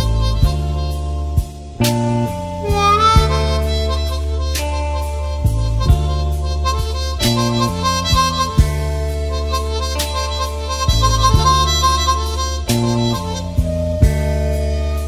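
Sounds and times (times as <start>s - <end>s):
bass line: 0.0s - 15.0s
harmonica long notes: 0.0s - 15.0s
steady drum beat: 0.0s - 15.0s.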